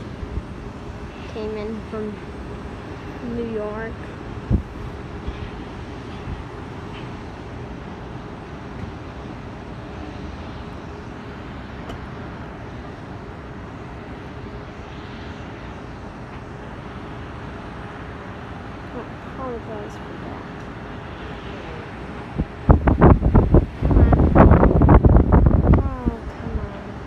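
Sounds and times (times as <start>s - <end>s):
distant jet engines rushing: 0.0s - 27.0s.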